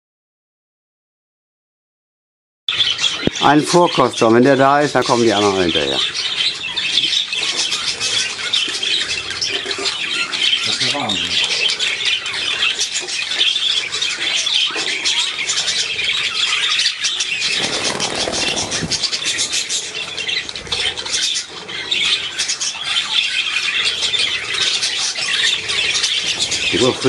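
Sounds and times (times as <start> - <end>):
budgerigars chattering and squawking: 2.7 - 27.0.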